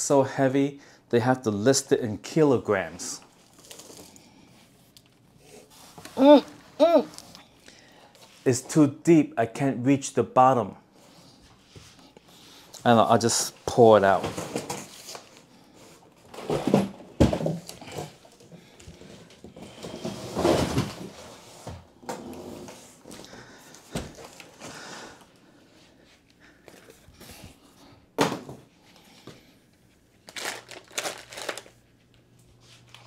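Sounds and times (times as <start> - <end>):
cardboard scraping and rustling: 19.6 - 21.8.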